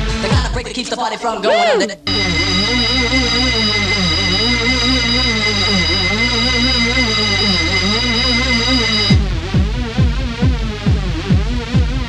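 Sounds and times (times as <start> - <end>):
high held synth tones: 1.5 - 9.2
wavering synth line: 1.7 - 9.2.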